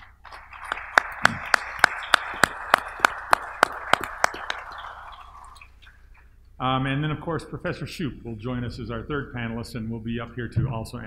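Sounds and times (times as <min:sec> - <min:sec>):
loud single claps: 0:00.0 - 0:05.4
audience applauding: 0:00.0 - 0:05.8.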